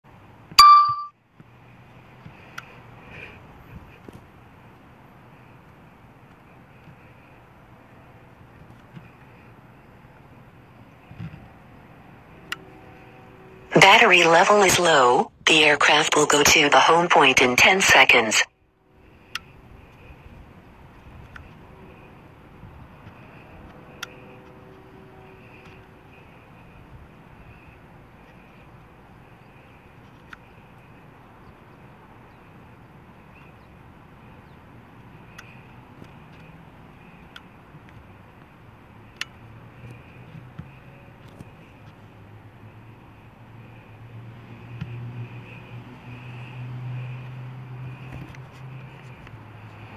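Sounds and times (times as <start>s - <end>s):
faint steady tone: 0.5s - 3.4s
synthesized voice warning: 13.7s - 18.5s.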